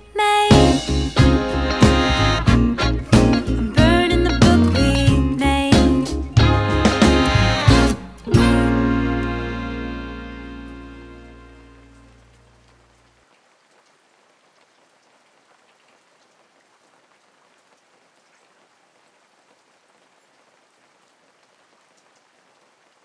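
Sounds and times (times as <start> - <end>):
guitar chord ringing: 6.4 - 12.2
faint steady hiss: 7.0 - 23.0.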